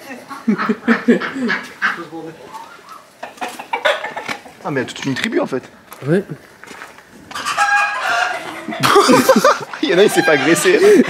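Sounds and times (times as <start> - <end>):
chickens clucking: 0.0 - 11.0.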